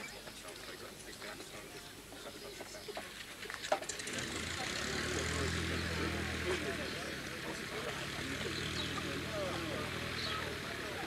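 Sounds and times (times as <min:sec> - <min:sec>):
people chatting: 0:00.0 - 0:11.0
propeller aircraft engine humming: 0:03.4 - 0:11.0.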